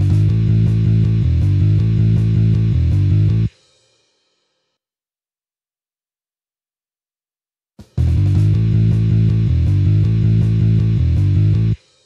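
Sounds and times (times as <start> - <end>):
electric guitar power chords: 0.0 - 3.5, 8.0 - 11.8.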